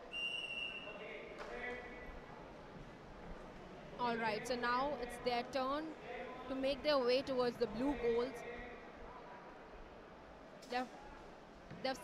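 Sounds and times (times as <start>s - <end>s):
referee's whistle blast: 0.0s - 0.9s
voices in a hall: 0.0s - 12.0s.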